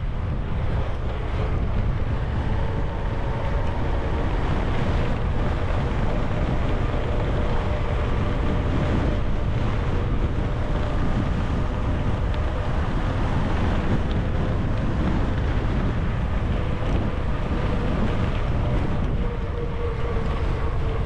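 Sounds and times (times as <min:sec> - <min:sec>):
bike tyres rolling on pavement: 0:00.0 - 0:21.0
wind rushing on microphone: 0:00.0 - 0:21.0.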